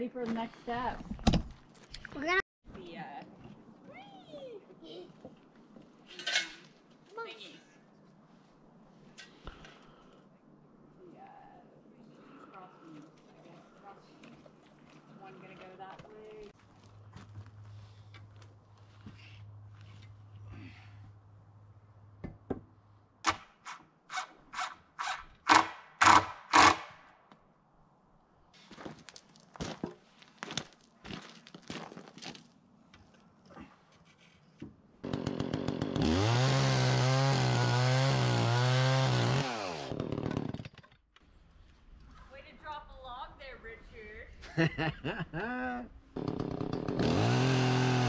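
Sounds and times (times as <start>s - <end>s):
gas chainsaw running: 35.0s - 40.6s, 46.2s - 48.0s.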